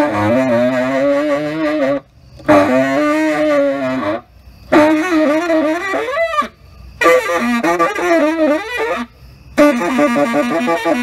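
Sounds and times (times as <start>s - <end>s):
tenor saxophone improvising: 0.0s - 11.0s.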